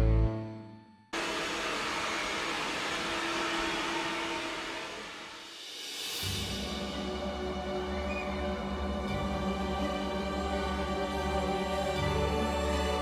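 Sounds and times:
hair dryer blowing: 0:01.2 - 0:06.4.

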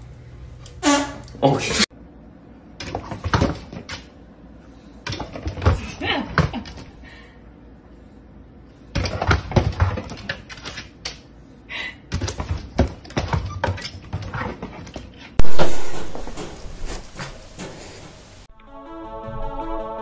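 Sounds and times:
very loud bang: 0:15.4 - 0:17.0.

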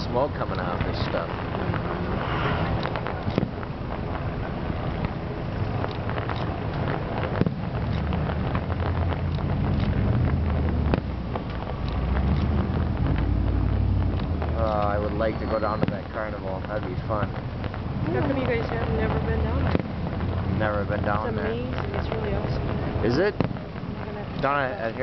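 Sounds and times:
distant fireworks popping: 0:00.0 - 0:25.0
steady low rumble: 0:00.0 - 0:25.0.

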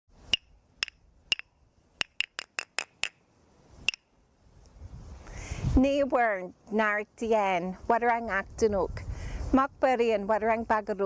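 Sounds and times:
wooden clapsticks striking: 0:00.3 - 0:03.2.

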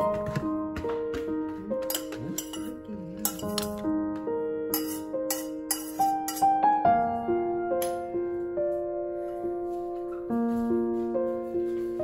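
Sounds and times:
gentle piano music: 0:00.0 - 0:12.0
kitchenware clinking on plates: 0:01.8 - 0:03.9, 0:04.7 - 0:06.6.

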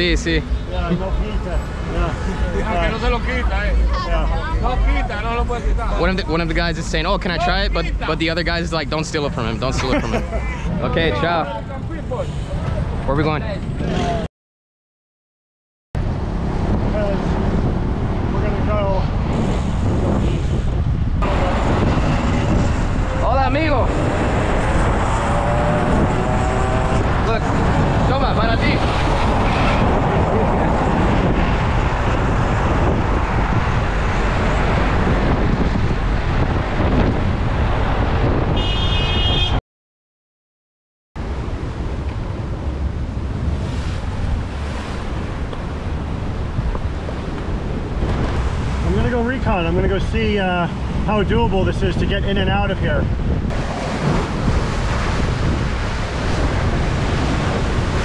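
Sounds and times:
road traffic: 0:00.0 - 0:14.3, 0:16.0 - 0:39.6, 0:41.2 - 0:58.0
wind on microphone: 0:16.0 - 0:39.6, 0:41.2 - 0:58.0
surf breaking against rocks: 0:53.5 - 0:58.0.

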